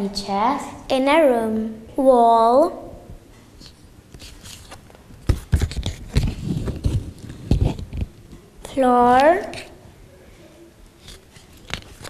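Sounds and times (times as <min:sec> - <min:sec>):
paper flashcards rustling: 0:03.6 - 0:08.1.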